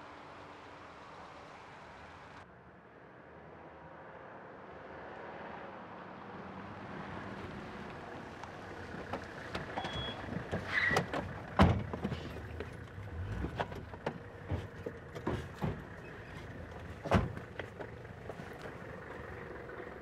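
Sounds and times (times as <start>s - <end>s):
car engine and tyres approaching: 0.0s - 20.0s.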